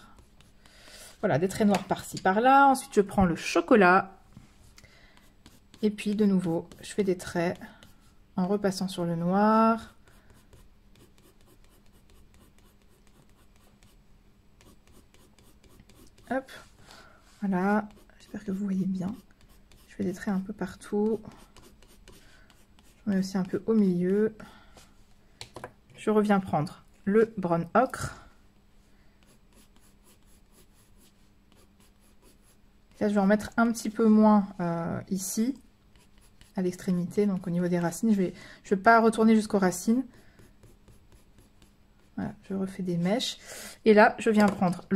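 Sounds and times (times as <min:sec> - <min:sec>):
coloured pencil scratching on paper: 0:00.0 - 0:00.8, 0:05.2 - 0:14.0, 0:14.6 - 0:16.6, 0:17.4 - 0:24.4, 0:29.2 - 0:33.9, 0:35.9 - 0:38.3, 0:39.4 - 0:42.4.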